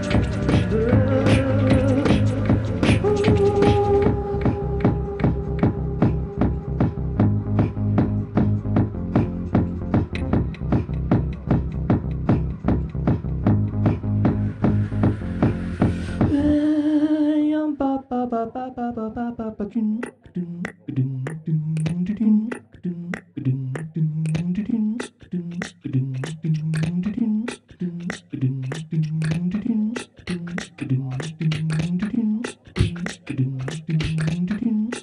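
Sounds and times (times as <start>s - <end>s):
mouth percussion clicks: 0.0s - 6.3s, 9.2s - 11.4s, 19.9s - 35.0s
techno beat with kick and bass: 0.0s - 16.5s, 25.5s - 27.2s, 28.0s - 35.0s
low hummed bassline: 0.0s - 16.6s
vocal note sliding downward: 14.7s - 35.0s.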